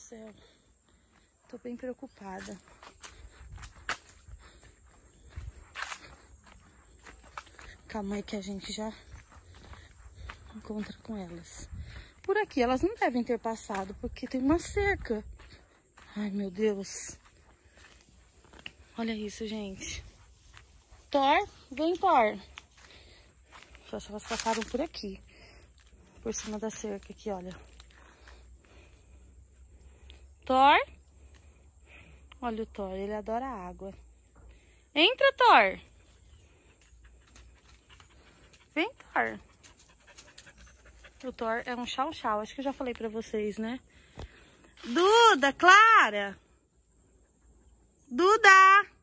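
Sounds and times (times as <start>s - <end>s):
footsteps crunching on dry leaves: 2.3s - 28.4s.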